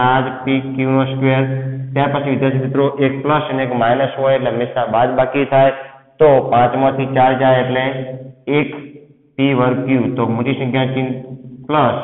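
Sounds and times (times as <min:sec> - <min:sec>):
man speaking slowly: 0:00.0 - 0:08.8, 0:09.4 - 0:12.0.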